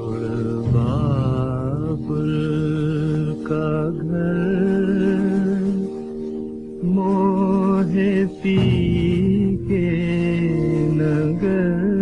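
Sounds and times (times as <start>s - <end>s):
man singing long held note: 0.0s - 6.1s, 6.8s - 12.0s.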